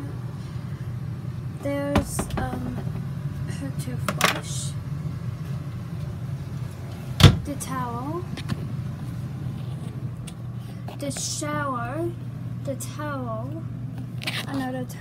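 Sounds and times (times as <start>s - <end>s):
steady low hum: 0.0s - 15.0s
cabinet door banged shut: 7.2s - 7.4s.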